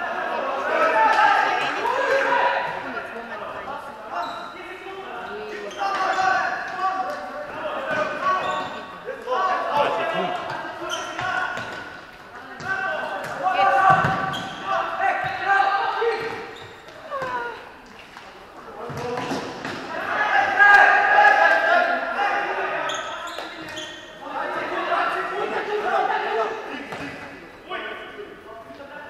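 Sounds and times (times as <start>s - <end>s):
voices shouting and talking: 0.0s - 29.0s.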